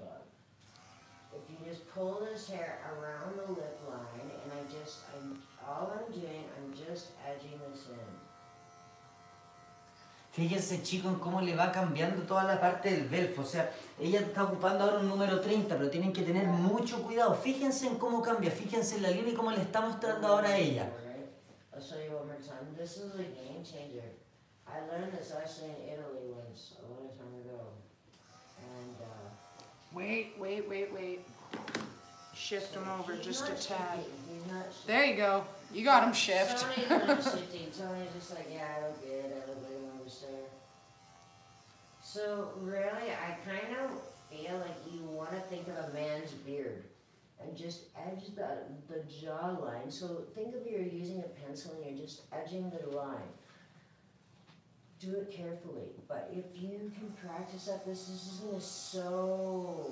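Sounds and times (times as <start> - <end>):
cordless hair clipper humming: 0.6 - 1.4, 28.2 - 30.0, 31.0 - 34.7, 40.6 - 42.1
hair clipper buzzing: 0.6 - 1.5, 2.9 - 6.7, 7.3 - 10.3, 28.1 - 42.6, 43.2 - 46.0, 56.9 - 59.9
person talking: 32.8 - 40.0.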